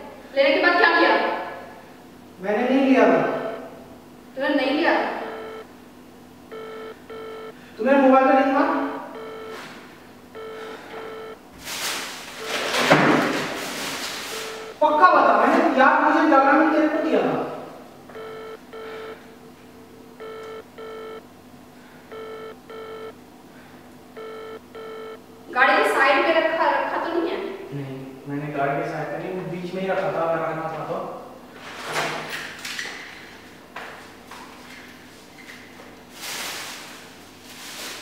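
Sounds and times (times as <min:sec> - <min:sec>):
phone ringback tone: 0:05.1 - 0:05.7, 0:06.5 - 0:07.6, 0:09.1 - 0:09.7, 0:10.4 - 0:11.4, 0:14.3 - 0:14.8, 0:18.1 - 0:19.3, 0:20.2 - 0:21.2, 0:22.1 - 0:23.2, 0:24.2 - 0:25.2.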